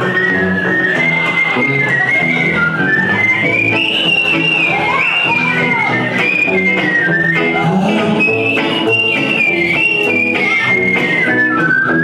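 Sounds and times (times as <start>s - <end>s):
banjo: 0.0s - 12.0s
bluegrass band playing: 0.0s - 12.0s
upright bass: 0.0s - 12.0s
whistled melody: 0.0s - 12.0s.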